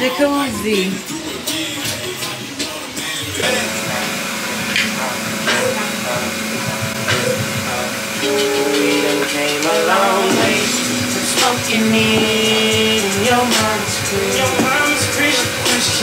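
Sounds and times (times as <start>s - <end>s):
music with sustained notes: 0.0s - 16.0s.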